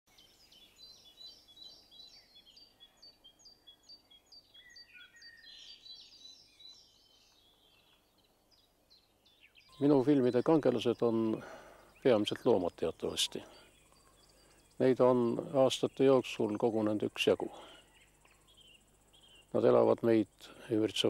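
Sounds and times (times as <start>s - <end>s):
quiet outdoor ambience: 0.1s - 21.0s
songbirds calling: 0.1s - 21.0s.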